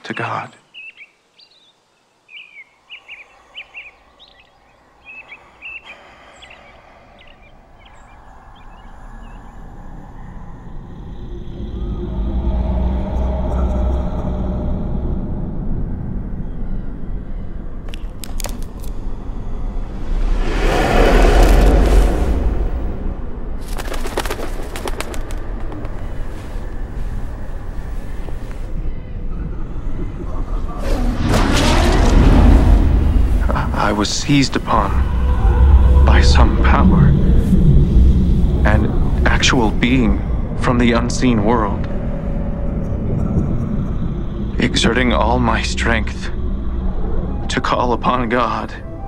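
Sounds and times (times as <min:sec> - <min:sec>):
small birds chirping: 0:00.0 - 0:14.1
birds: 0:00.0 - 0:15.2, 0:23.6 - 0:48.9
deep rumbling drone: 0:03.2 - 0:49.0.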